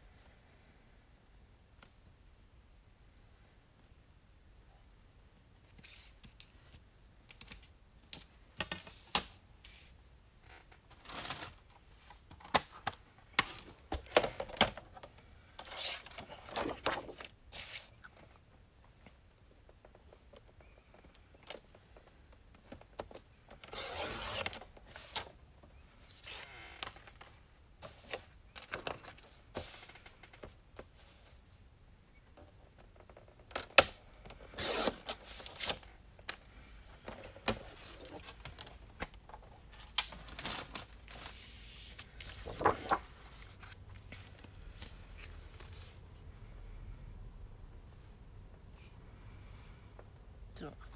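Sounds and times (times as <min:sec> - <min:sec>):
paper rustling: 0:15.6 - 0:18.2, 0:40.1 - 0:46.0.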